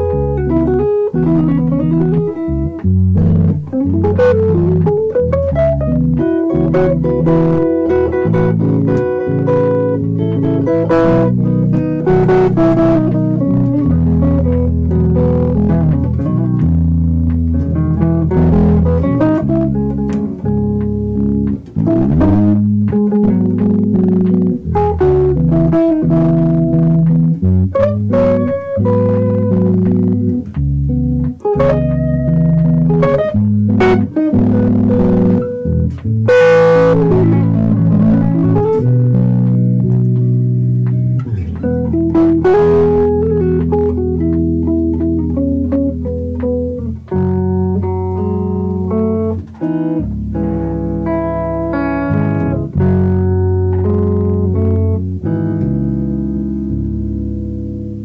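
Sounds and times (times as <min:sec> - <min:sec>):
electric bass: 0:00.0 - 0:58.0
electric guitar playing jazz: 0:00.0 - 0:58.0.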